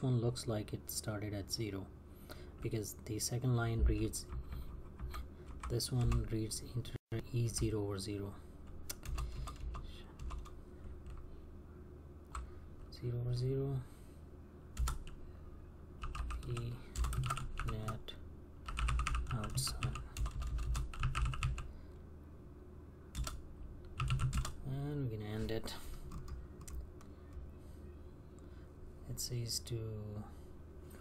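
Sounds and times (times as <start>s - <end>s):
computer keyboard typing: 4.2s - 6.3s, 8.8s - 11.2s, 14.8s - 15.2s, 16.0s - 18.0s, 18.6s - 21.7s, 23.1s - 23.4s, 24.0s - 24.6s, 26.1s - 26.8s.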